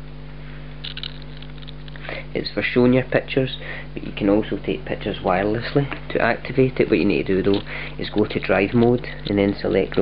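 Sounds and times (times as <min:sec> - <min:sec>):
steady low hum: 0:00.0 - 0:10.0
background hiss: 0:05.1 - 0:09.9.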